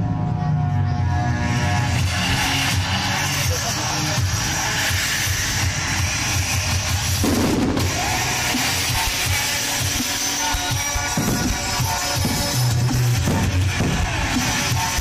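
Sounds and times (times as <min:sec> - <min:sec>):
music with pounding drum beat: 0:01.6 - 0:15.0
fireworks crackling and popping: 0:06.2 - 0:15.0.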